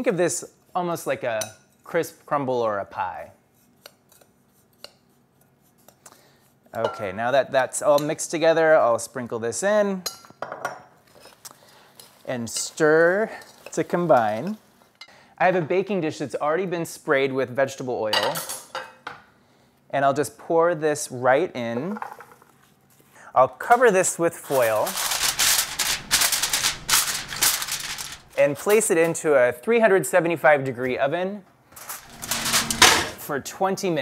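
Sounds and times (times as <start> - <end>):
aluminium foil crinkling: 24.4 - 28.7, 31.9 - 33.2.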